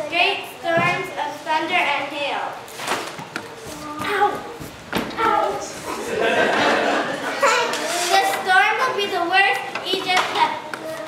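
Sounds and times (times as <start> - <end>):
children speaking: 0.0 - 11.0.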